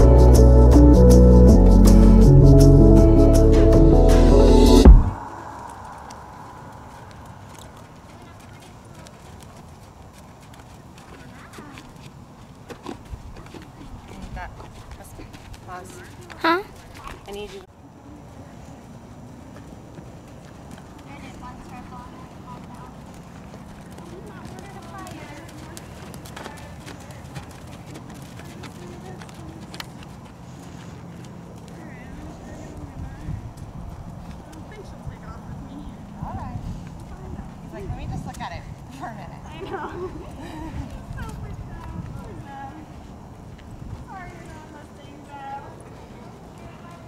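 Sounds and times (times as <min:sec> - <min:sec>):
steady low hum: 0:00.0 - 0:10.0
horse hooves on dirt: 0:04.9 - 0:47.0.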